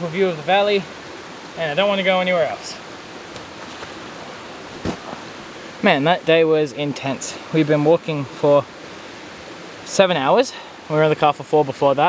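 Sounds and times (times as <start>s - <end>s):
man talking: 0.0s - 0.9s, 1.6s - 2.8s, 5.8s - 8.7s, 9.9s - 12.0s.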